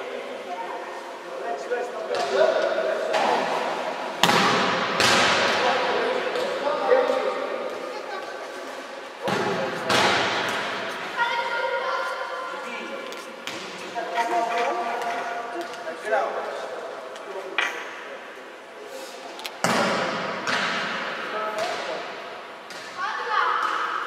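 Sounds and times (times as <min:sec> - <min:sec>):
voices chattering in a hall: 0:00.0 - 0:24.0.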